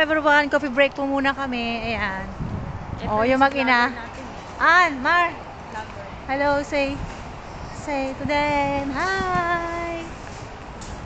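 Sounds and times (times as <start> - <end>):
woman singing: 7.9 - 10.1.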